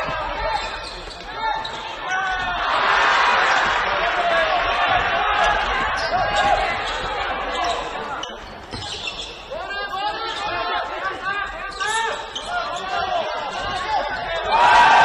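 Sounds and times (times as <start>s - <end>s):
people shouting in a gym: 0.0s - 8.2s, 8.8s - 15.0s
basketball bouncing: 0.0s - 9.1s
sneakers squeaking: 0.0s - 15.0s.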